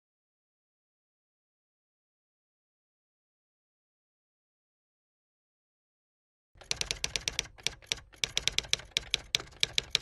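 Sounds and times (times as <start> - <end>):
keyboard key clicks: 6.6 - 10.0.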